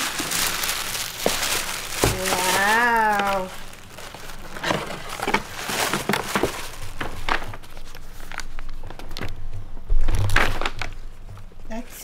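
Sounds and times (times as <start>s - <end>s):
wrapping paper rustling and crinkling: 0.0s - 11.7s.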